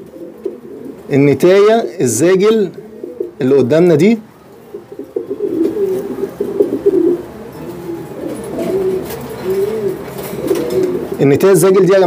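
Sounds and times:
pigeons cooing: 0.0s - 11.8s.

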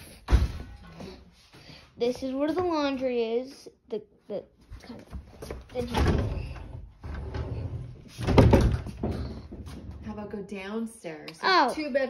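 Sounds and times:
wooden closet doors rattling: 5.2s - 10.2s.

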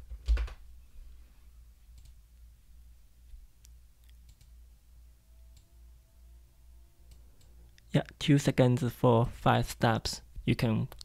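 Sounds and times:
low steady hum: 0.0s - 11.0s
man speaking: 7.9s - 11.0s.

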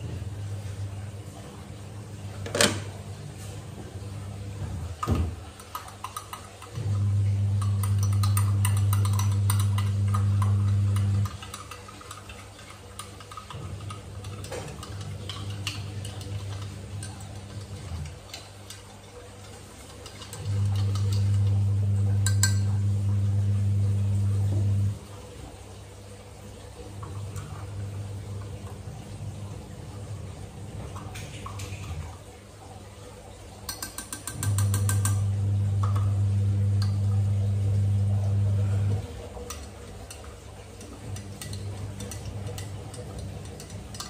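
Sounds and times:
electric frother buzzing: 6.8s - 11.5s, 20.3s - 25.0s, 34.3s - 39.4s.

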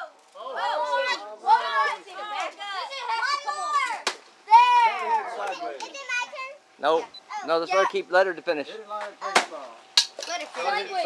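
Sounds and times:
children shouting and squealing: 0.0s - 8.0s.

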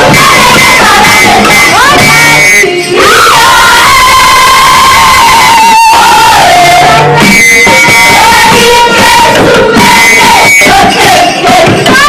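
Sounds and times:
choir singing: 0.0s - 12.0s
people shouting: 0.0s - 12.0s.

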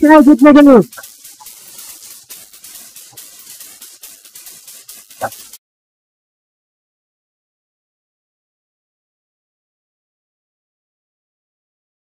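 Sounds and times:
faint steady hiss: 0.0s - 5.6s
rapid crackling clicks: 0.0s - 5.6s.

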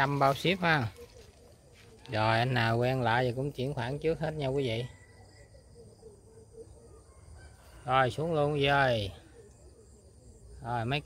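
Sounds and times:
man's voice: 0.0s - 1.1s, 2.0s - 4.9s, 10.6s - 11.0s
insects chirring: 0.0s - 11.0s.

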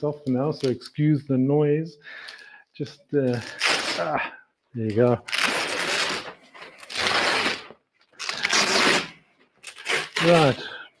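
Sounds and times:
hook-and-loop fastening ripping: 3.3s - 4.1s, 4.9s - 10.7s.

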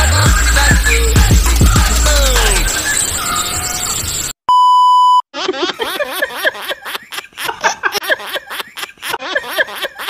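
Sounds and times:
electronic beep: 0.7s - 5.2s.

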